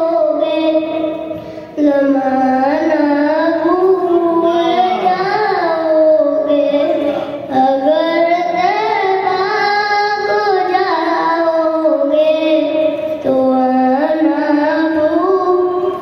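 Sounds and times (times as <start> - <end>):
boy singing into a microphone: 0.0 - 16.0.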